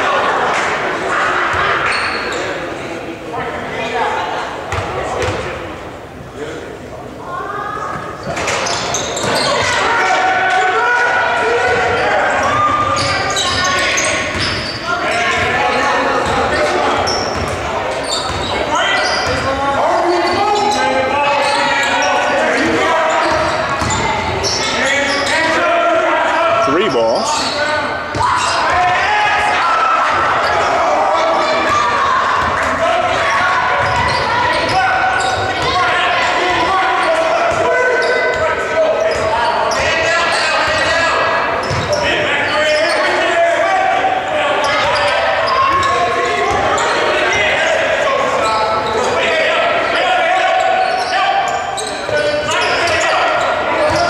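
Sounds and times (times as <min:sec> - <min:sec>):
people talking and shouting: 0:00.0 - 0:54.0.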